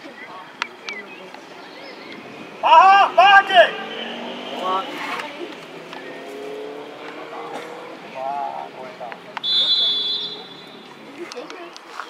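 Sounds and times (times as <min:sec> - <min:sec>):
motor vehicle passing: 0:01.2 - 0:11.5
short shout: 0:02.6 - 0:04.1.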